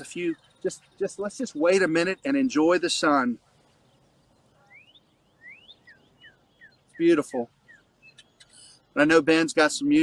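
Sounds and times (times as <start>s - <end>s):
songbird whistling: 3.8s - 8.7s.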